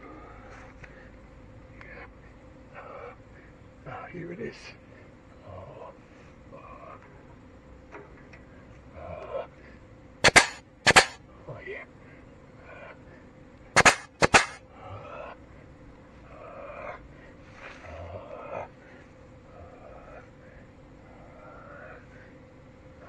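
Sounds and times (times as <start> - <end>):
grease gun air bursts: 10.2 - 11.2, 13.8 - 14.6.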